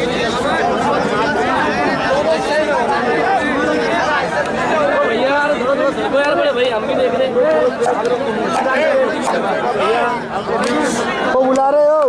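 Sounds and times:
crowd of men chattering: 0.0s - 12.0s
man's voice standing out: 0.0s - 12.0s.

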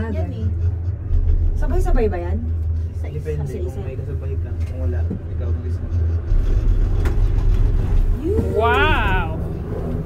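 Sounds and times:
gondola cabin rumble: 0.0s - 10.0s.

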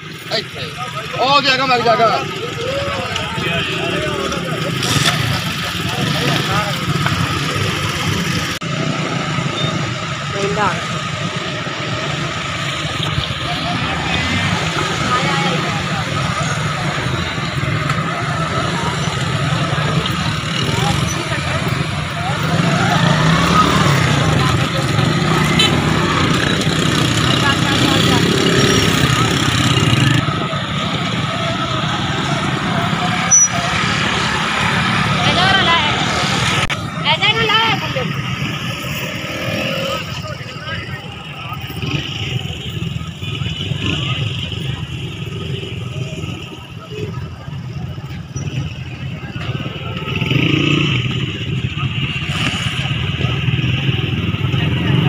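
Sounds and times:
motorcycles and cars passing: 0.0s - 55.0s
people's voices: 0.0s - 55.0s.

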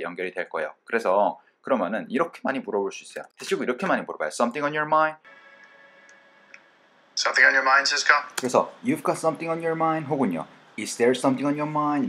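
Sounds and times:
man speaking: 0.0s - 5.2s, 7.2s - 12.0s
faint steady hum: 0.0s - 12.0s.

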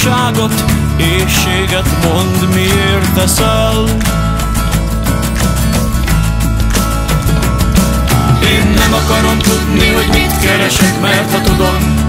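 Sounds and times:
band music: 0.0s - 12.0s
steady drum beat: 0.0s - 12.0s.

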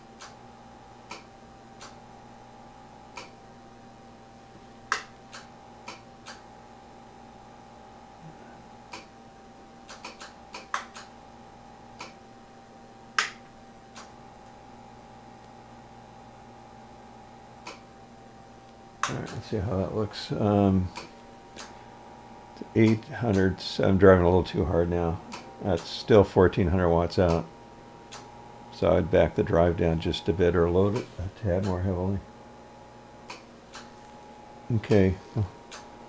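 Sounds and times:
faint hum with high tone: 0.0s - 36.0s
switch clicks: 1.1s - 2.0s, 3.1s - 3.4s, 9.9s - 11.1s, 17.6s - 17.9s.

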